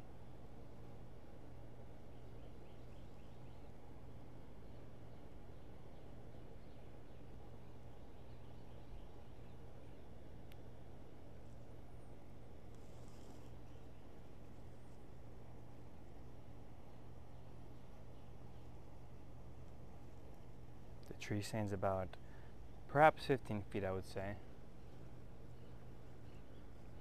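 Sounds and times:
steady low hum: 0.0s - 27.0s
faint bird chirps: 2.0s - 10.4s, 24.8s - 27.0s.

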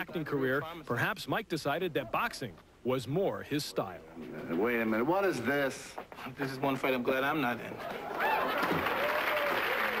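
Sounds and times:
studio audience applauding: 8.1s - 10.0s.

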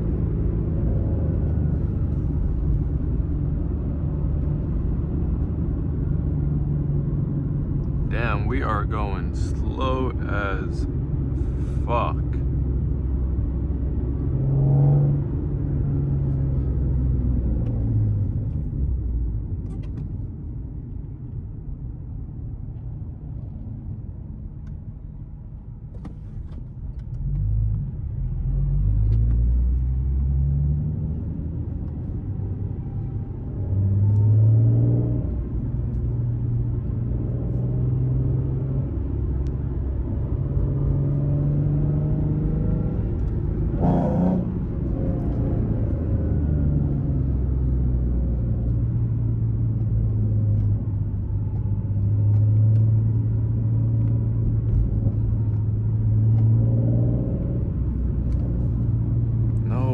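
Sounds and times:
car engine from inside cabin: 0.0s - 59.9s.

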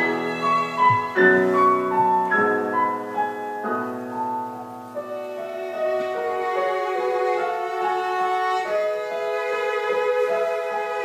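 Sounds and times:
classical piano trio: 0.0s - 11.0s.

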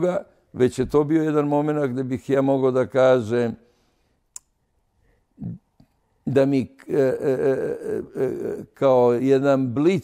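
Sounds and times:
low vocal sound: 6.9s - 8.8s.

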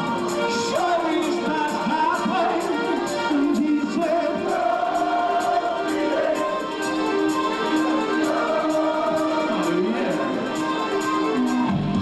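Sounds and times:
high rhythmic ticks: 0.0s - 11.8s
male singer: 0.5s - 6.6s, 8.1s - 10.7s.

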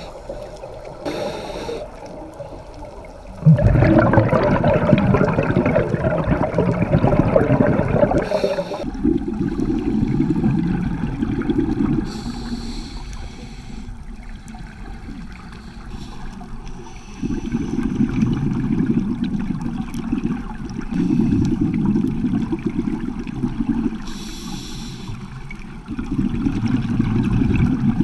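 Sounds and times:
regulator breath hiss: 0.0s - 2.6s, 8.2s - 8.9s, 12.1s - 14.0s, 15.5s - 17.8s, 24.0s - 25.3s
gurgling rush of exhaled bubbles: 3.1s - 12.3s, 17.5s - 24.1s, 25.8s - 28.0s.

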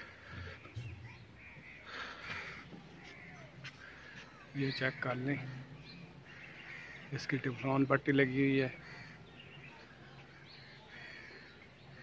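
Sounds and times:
crows cawing: 0.0s - 7.9s, 8.5s - 12.0s.

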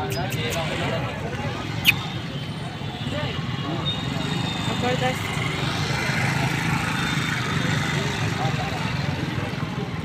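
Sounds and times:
people chattering: 0.0s - 10.0s.

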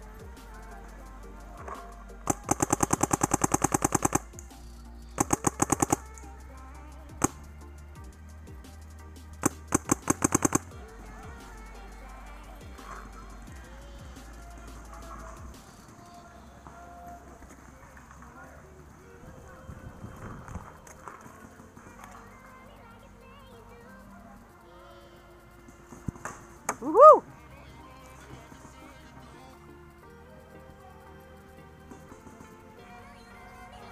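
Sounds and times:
paintball marker firing: 0.2s - 7.7s, 8.5s - 18.3s, 25.6s - 27.1s
low rumble on microphone: 16.4s - 22.3s.

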